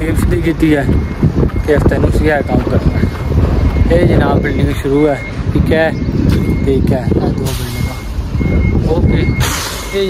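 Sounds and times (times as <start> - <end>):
reversing alarm beeping: 0.0 - 10.0.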